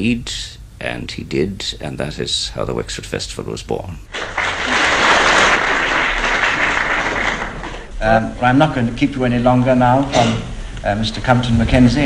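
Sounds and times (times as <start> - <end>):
audience applauding: 4.1 - 7.9.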